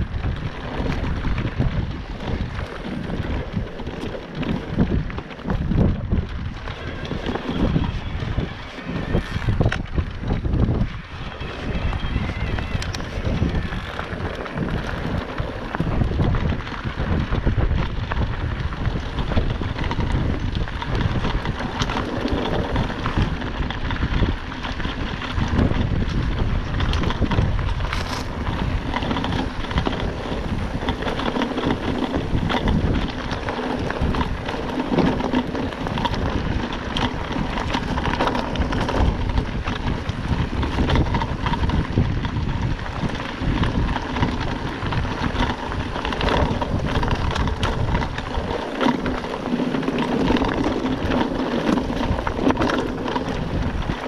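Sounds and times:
bike frame rattling: 0:00.0 - 0:54.0
bike tyres crunching on stones: 0:00.0 - 0:54.0
wind buffeting microphone: 0:00.0 - 0:54.0.

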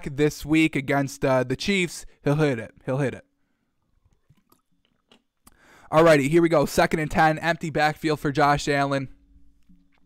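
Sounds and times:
mouth and swallowing clicks: 0:03.9 - 0:05.6
breath in: 0:05.5 - 0:05.9.

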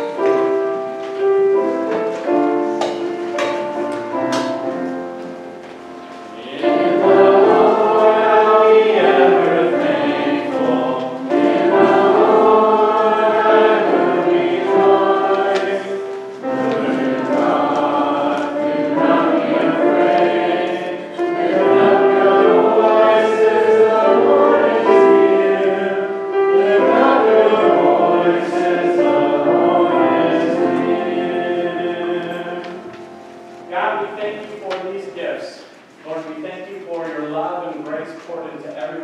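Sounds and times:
congregation singing a hymn: 0:00.0 - 0:39.0
piano accompaniment: 0:00.0 - 0:39.0.

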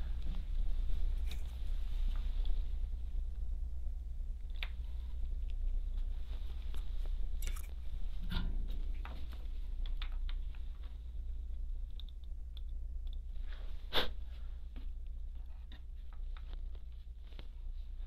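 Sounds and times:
wire handling clicks and crackles: 0:00.0 - 0:02.6, 0:04.4 - 0:13.6, 0:14.7 - 0:18.0
steady low hum: 0:00.0 - 0:18.0.

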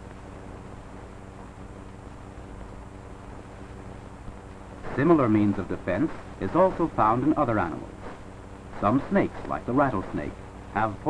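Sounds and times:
film soundtrack hum and hiss: 0:00.0 - 0:11.0.

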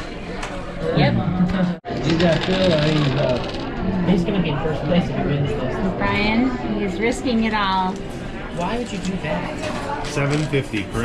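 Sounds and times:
people talking: 0:00.8 - 0:03.5, 0:04.1 - 0:08.0, 0:08.6 - 0:11.0.

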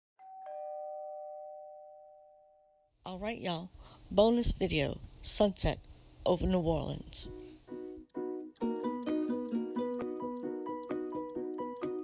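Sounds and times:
two-note ding-dong chime: 0:00.2 - 0:02.8.

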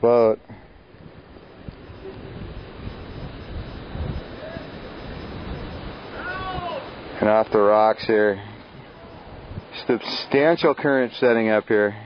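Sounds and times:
wind noise: 0:00.0 - 0:10.0
rushing water: 0:01.0 - 0:11.2
faint high wavering call: 0:01.8 - 0:07.0.

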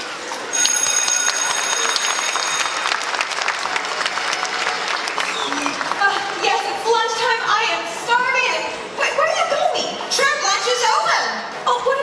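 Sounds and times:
audience applauding: 0:00.6 - 0:06.8.

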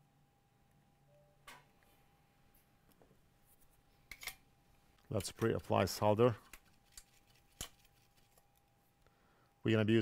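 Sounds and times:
faint steady tone: 0:00.0 - 0:02.9.

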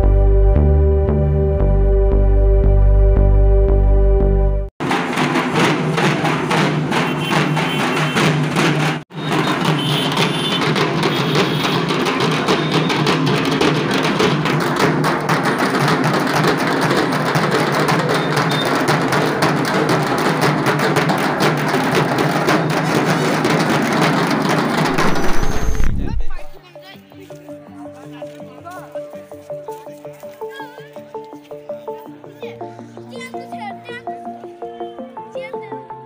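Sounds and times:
barrel drums beaten with sticks: 0:04.8 - 0:26.6.

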